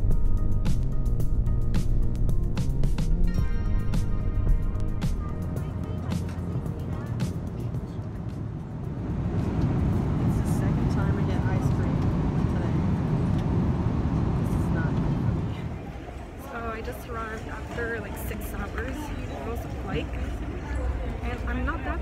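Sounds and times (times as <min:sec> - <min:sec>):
airliner cabin roar: 0:00.0 - 0:22.0
faint voices: 0:05.1 - 0:13.2, 0:14.3 - 0:22.0.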